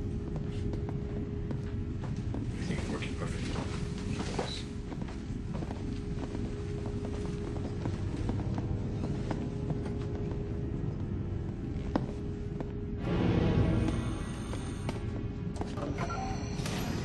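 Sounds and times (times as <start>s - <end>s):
constant hum: 0.0s - 17.0s
background music: 4.8s - 17.0s.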